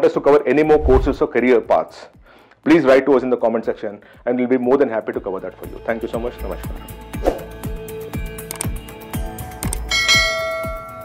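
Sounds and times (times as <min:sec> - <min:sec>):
background music with steady beat: 0:00.0 - 0:11.0
bell chime notification: 0:09.9 - 0:11.0.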